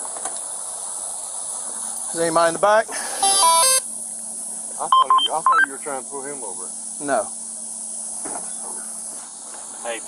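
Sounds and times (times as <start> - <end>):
high-pitched hiss: 0.0 - 10.0.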